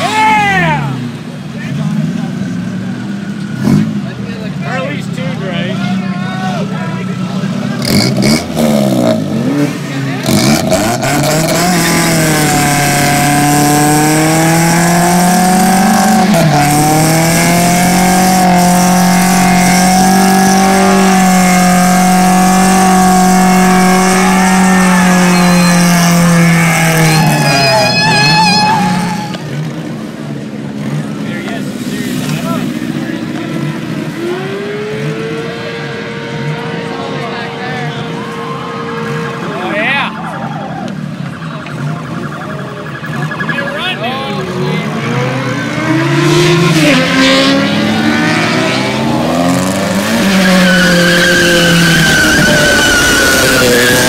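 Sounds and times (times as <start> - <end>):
car engine revving: 0.0 - 54.0
tyres spinning and squealing: 9.9 - 30.0, 37.6 - 54.0.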